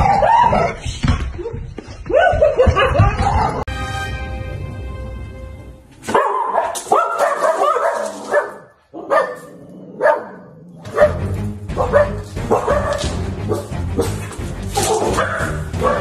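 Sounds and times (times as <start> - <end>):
dog barking: 2.1 - 3.6, 6.1 - 16.0.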